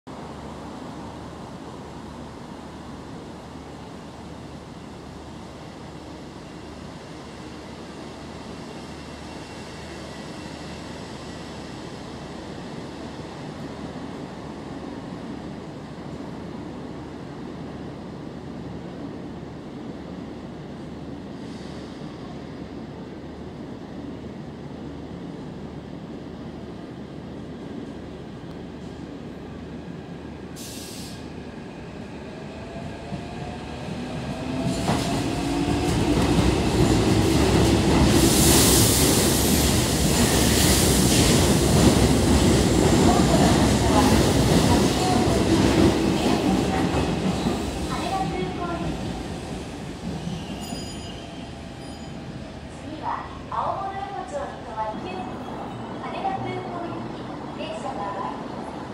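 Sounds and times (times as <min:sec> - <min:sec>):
train wheels rumbling on rails: 0:25.9 - 0:53.9.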